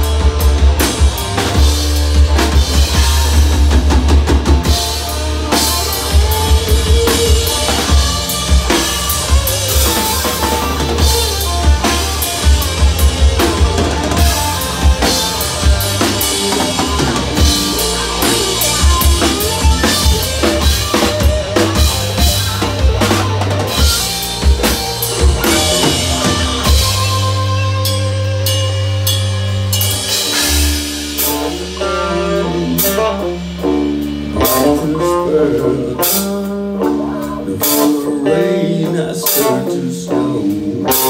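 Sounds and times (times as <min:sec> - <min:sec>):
bass guitar: 0:00.0 - 0:41.0
distorted electric guitars: 0:00.0 - 0:41.0
drum kit playing: 0:00.0 - 0:41.0.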